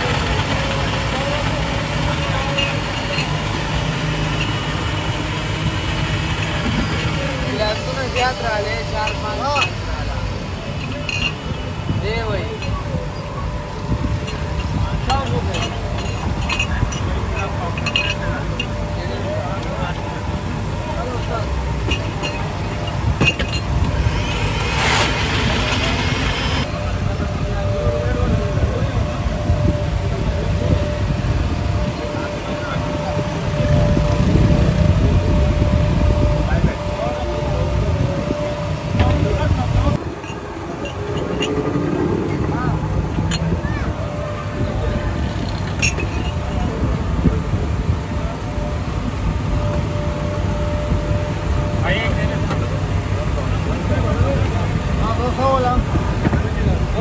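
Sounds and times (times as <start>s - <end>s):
passing traffic rumble: 0.0s - 57.0s
people talking: 0.0s - 57.0s
rush of noise: 22.0s - 36.9s, 37.7s - 57.0s.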